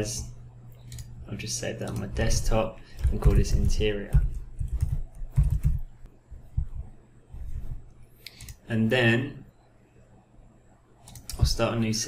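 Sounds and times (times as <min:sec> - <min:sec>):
typing on computer keyboard: 0:03.0 - 0:05.9, 0:11.0 - 0:11.5.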